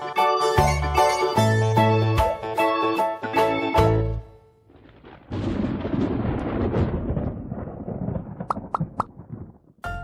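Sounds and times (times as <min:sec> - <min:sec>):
music: 0:00.0 - 0:04.6.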